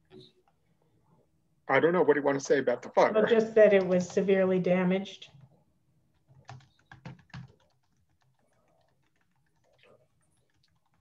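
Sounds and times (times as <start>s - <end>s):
faint keyboard typing: 3.8s - 4.4s, 5.2s - 11.0s.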